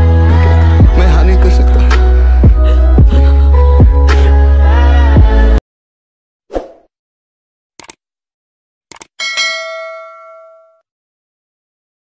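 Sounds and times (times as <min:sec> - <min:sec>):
double mouse click: 0:07.8 - 0:08.0
notification bell ding: 0:09.2 - 0:10.8.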